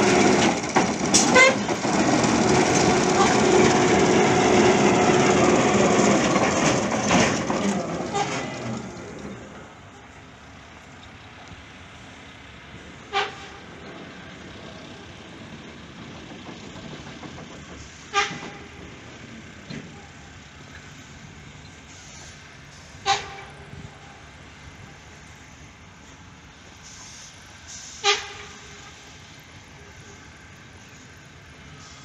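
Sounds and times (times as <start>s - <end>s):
construction site noise: 0.0s - 32.0s.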